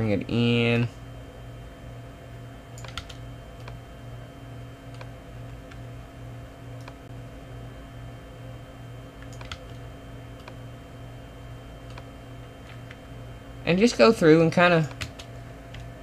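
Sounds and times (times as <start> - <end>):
low electrical hum: 0.0 - 16.0
mouse and keyboard clicks: 4.9 - 5.1, 9.2 - 9.8, 11.9 - 12.1.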